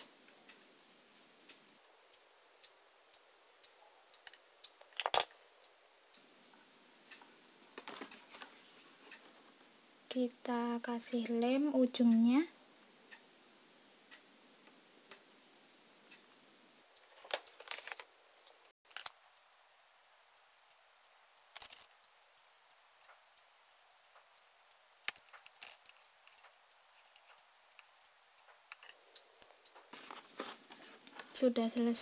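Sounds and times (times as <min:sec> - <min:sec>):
quiet hiss: 0:00.0 - 0:32.0.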